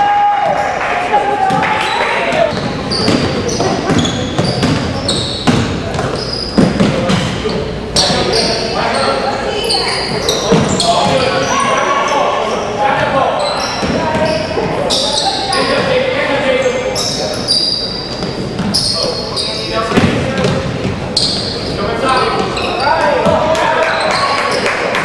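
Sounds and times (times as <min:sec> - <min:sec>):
voices echoing in gym: 0:00.0 - 0:25.0
sneakers squeaking on hardwood: 0:01.5 - 0:24.7
basketball bouncing: 0:02.3 - 0:07.4, 0:18.2 - 0:18.8, 0:20.0 - 0:21.5, 0:23.2 - 0:23.5.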